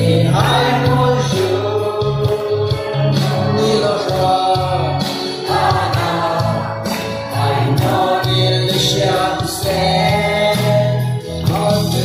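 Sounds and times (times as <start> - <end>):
men singing in unison: 0.0 - 12.0
hand claps: 1.3 - 5.2, 6.8 - 7.9, 10.5 - 12.0.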